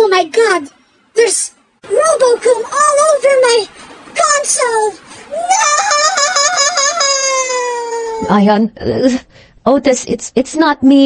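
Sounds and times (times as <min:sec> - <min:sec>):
person wailing: 0:05.3 - 0:08.3.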